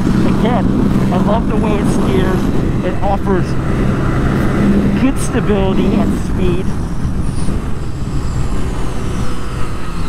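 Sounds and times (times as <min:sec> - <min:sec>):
motorcycle engine running: 0:00.0 - 0:10.0
wind rush: 0:00.0 - 0:10.0.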